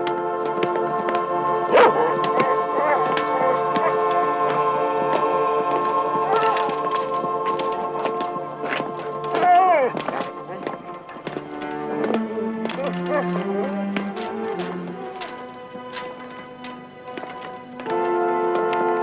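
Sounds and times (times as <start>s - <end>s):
film score with held notes: 0.0s - 19.0s
dog whining: 1.7s - 4.0s, 12.8s - 13.9s.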